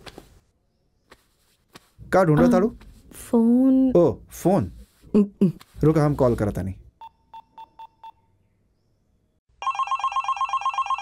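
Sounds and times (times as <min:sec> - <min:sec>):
phone ringing: 0:09.6 - 0:11.0.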